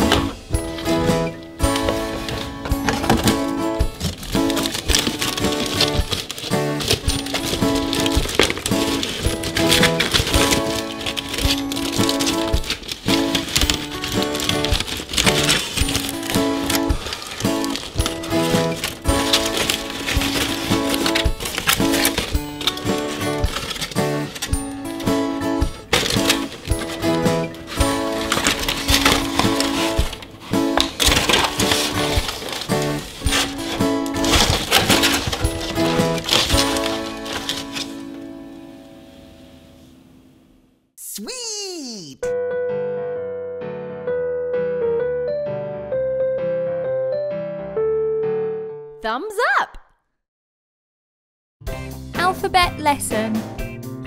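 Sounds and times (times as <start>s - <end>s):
foil wrapper crinkling: 0.0s - 38.2s
background music: 0.0s - 39.9s, 41.0s - 49.7s, 51.6s - 54.0s.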